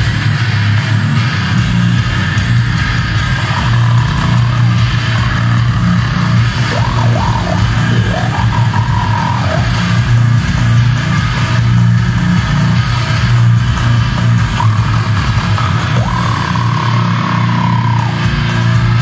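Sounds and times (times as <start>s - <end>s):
live metal band playing: 0.0s - 19.0s
high sliding guitar note: 2.8s - 10.0s, 14.4s - 18.5s.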